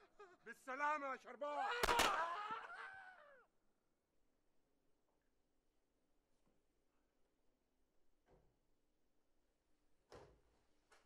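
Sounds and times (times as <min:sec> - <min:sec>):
gunshot: 0:01.8 - 0:02.2.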